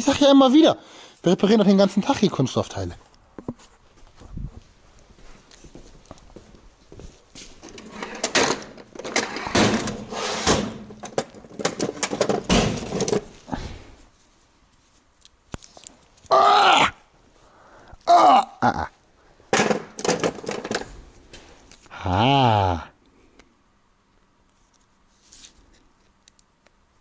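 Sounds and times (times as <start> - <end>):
man exclaiming: 18.0 - 18.9, 21.9 - 23.0.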